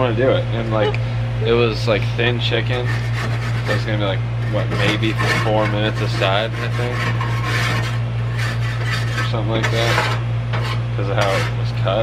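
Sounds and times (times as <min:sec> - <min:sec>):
steady low hum: 0:00.0 - 0:12.0
grill brush scrubbing grates: 0:02.0 - 0:12.0.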